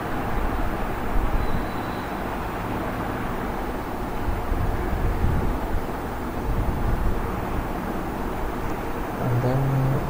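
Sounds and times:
low rumble and hiss: 0:00.0 - 0:10.0
hummed voice: 0:09.2 - 0:10.0.

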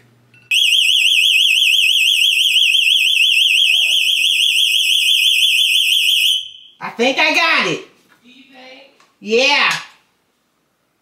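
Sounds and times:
warbling alarm siren: 0:00.5 - 0:06.8.

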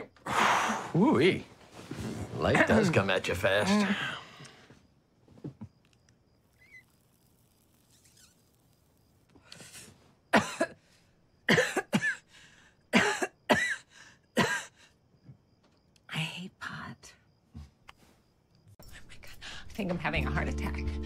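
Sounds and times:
breathy exhale: 0:00.2 - 0:01.0
woman coughing: 0:10.3 - 0:10.8, 0:11.5 - 0:12.3, 0:12.9 - 0:14.8.

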